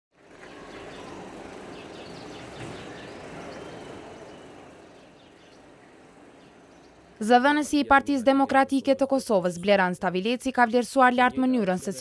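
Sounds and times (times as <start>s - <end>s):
outdoor background noise: 0.1s - 12.0s.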